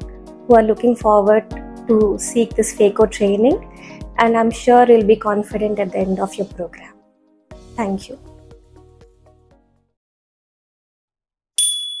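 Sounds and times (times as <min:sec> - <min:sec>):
notification bell ding: 0:11.6 - 0:12.0.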